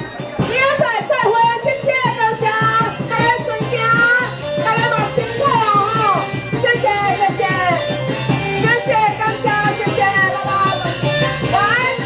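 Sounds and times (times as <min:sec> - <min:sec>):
instrumental accompaniment: 0:00.0 - 0:12.0.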